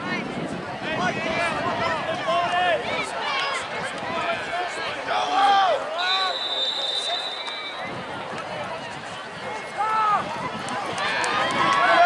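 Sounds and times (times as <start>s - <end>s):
spectators shouting and yelling: 0.0s - 12.0s.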